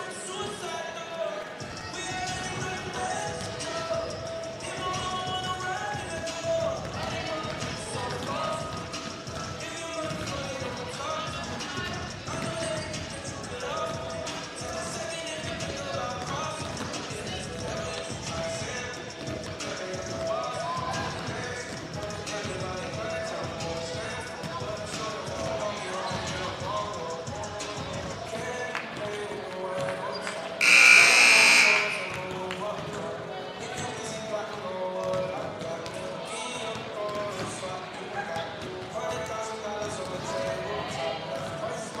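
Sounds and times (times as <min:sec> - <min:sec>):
music over arena speakers: 0:00.0 - 0:37.9
basketballs bouncing on hardwood: 0:06.1 - 0:11.5, 0:12.3 - 0:13.1
loud buzzer: 0:30.6 - 0:32.3.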